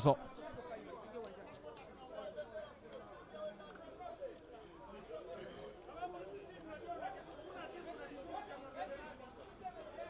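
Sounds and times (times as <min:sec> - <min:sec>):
chatter and calls of voices: 0:00.0 - 0:10.0.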